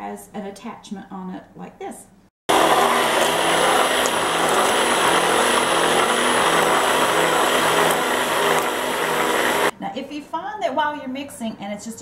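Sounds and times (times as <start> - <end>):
immersion blender motor hum: 2.5 - 9.7.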